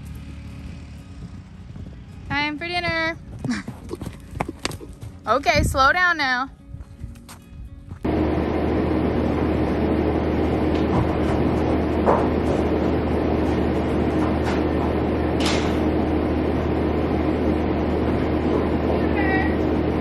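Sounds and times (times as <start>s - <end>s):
machine drone with low hum: 0.0s - 5.3s, 6.6s - 20.0s.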